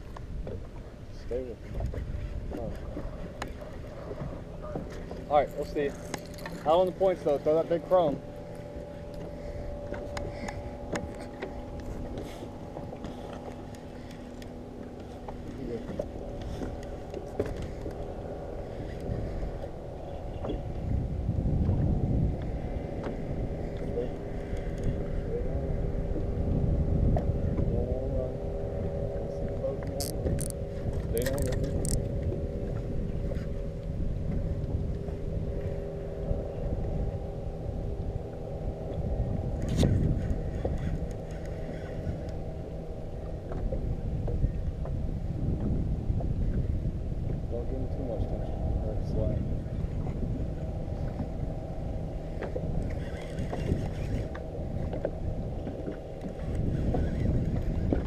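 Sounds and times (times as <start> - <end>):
boat motor humming: 0.0 - 58.0
low rumble: 0.0 - 58.0.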